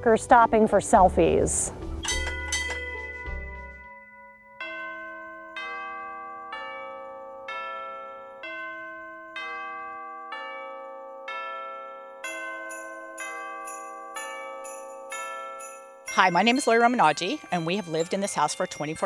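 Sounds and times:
quick bell strikes: 2.0 - 6.2
slow chime melody: 2.0 - 19.0.

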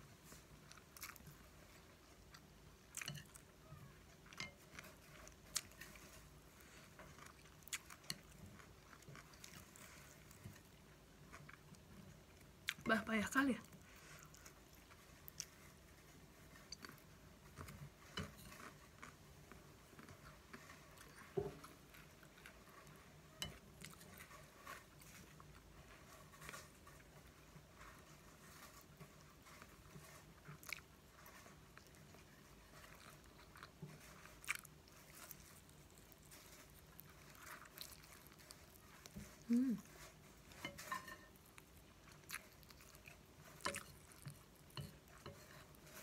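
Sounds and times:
person chewing: 0.2 - 12.9, 13.6 - 46.0.

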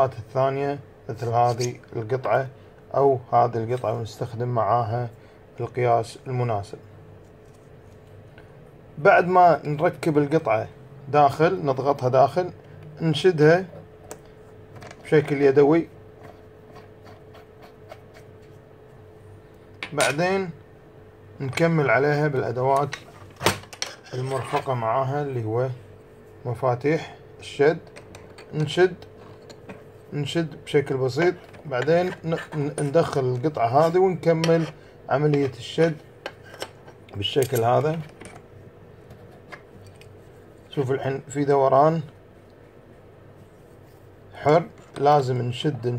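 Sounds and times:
faint steady hum: 0.0 - 45.9
light clicks and rubbing of metal parts: 1.2 - 2.5, 21.4 - 26.3, 27.8 - 42.7, 43.4 - 45.9.

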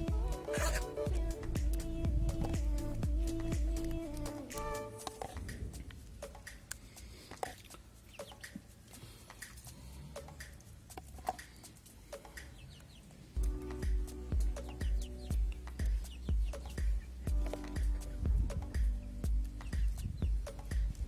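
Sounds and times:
hens clucking: 0.0 - 1.1
music with low beat: 0.0 - 7.0, 13.4 - 21.0.

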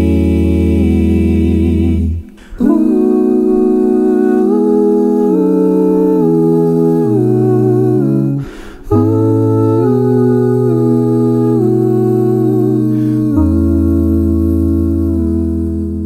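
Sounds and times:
male group humming chords: 0.0 - 16.0.

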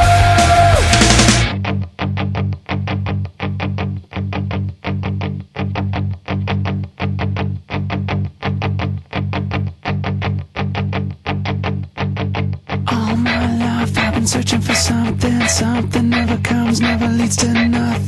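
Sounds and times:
rock music with distorted guitar: 0.0 - 18.0.

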